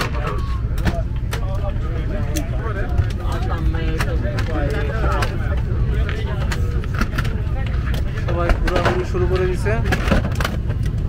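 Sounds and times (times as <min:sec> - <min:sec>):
low cabin rumble: 0:00.0 - 0:11.0
passengers chattering: 0:00.0 - 0:11.0.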